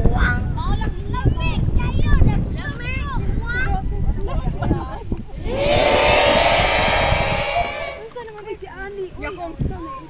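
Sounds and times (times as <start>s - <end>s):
group of voices shouting: 5.4s - 8.1s.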